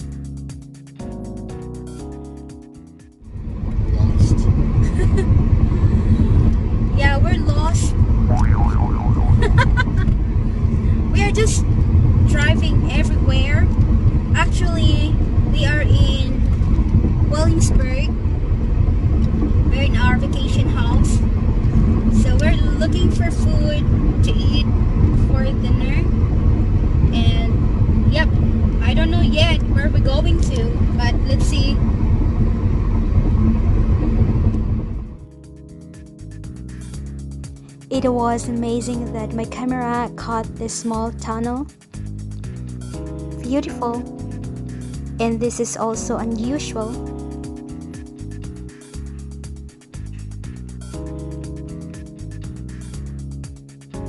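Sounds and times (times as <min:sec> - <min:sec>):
car road and engine rumble: 0:00.0 - 0:54.0
woman talking: 0:06.9 - 0:08.0, 0:11.1 - 0:11.6, 0:12.3 - 0:13.7, 0:14.4 - 0:16.4, 0:17.3 - 0:18.1, 0:19.7 - 0:21.2, 0:22.2 - 0:24.6, 0:25.3 - 0:26.1, 0:27.2 - 0:31.8, 0:37.9 - 0:41.7, 0:43.4 - 0:44.1, 0:45.2 - 0:47.0.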